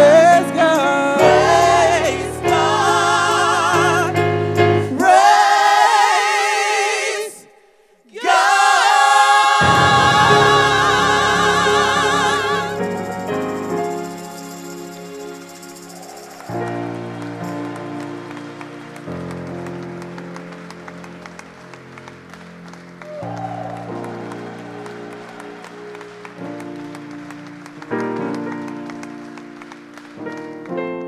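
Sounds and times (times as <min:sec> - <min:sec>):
piano playing slow chords: 0:00.0 - 0:05.2, 0:09.6 - 0:31.0
hand clapping: 0:12.8 - 0:31.0.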